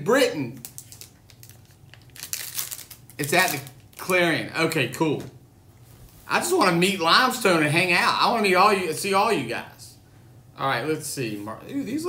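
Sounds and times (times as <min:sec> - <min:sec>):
plastic wrapper crinkling: 0:00.5 - 0:04.2.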